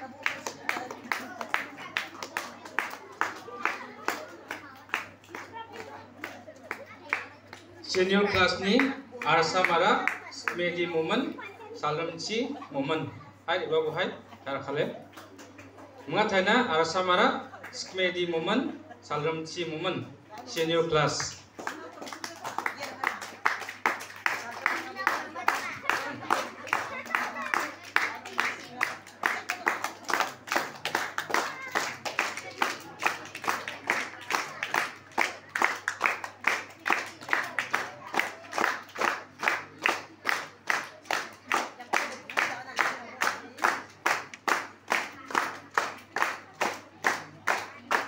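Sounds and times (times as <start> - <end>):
crowd clapping in rhythm: 0.0 - 10.7, 20.3 - 48.0.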